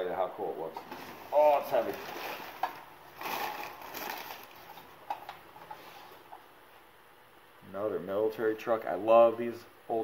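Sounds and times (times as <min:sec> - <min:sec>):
packing paper rustling and crinkling: 0:00.9 - 0:06.1.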